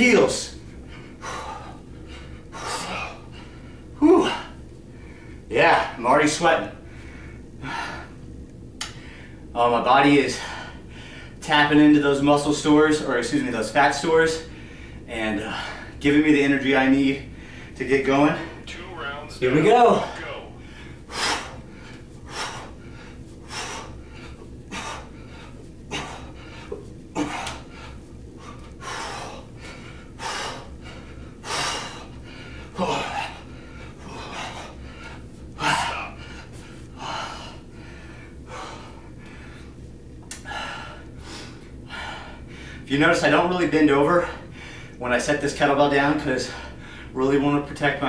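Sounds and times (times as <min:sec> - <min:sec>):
hard breathing: 0:00.1 - 0:05.9, 0:06.7 - 0:09.5, 0:10.2 - 0:11.4, 0:14.4 - 0:16.0, 0:17.2 - 0:18.7, 0:19.8 - 0:42.9, 0:44.1 - 0:45.0, 0:46.4 - 0:47.2.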